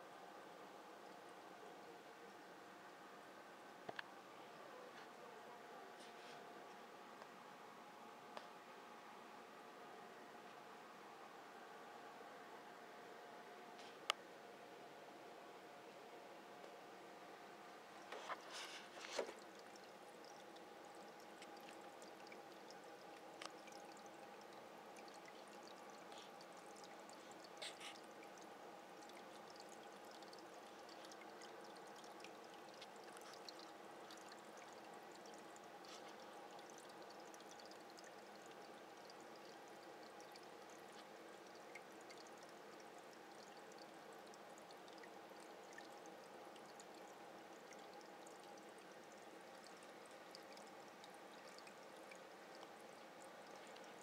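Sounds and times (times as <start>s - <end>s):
quiet steady hum: 0.0s - 54.0s
aquarium water splashing: 16.8s - 54.0s.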